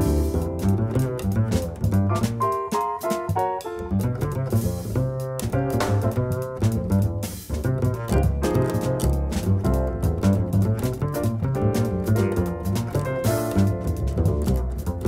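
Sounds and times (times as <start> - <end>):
piano: 0.0 - 15.0
plucked double bass: 0.0 - 15.0.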